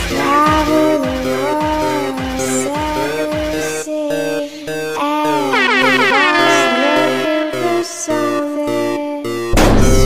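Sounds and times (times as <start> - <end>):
electronic dance music: 0.0 - 9.6
horn effect gliding downward: 5.5 - 8.4.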